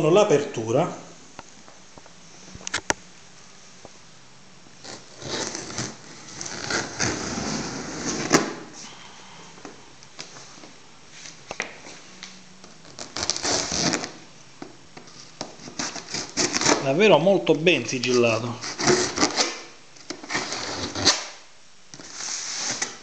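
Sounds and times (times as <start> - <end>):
knife scraping cardboard: 4.8 - 8.6, 12.9 - 14.2, 15.2 - 16.9, 18.6 - 23.0.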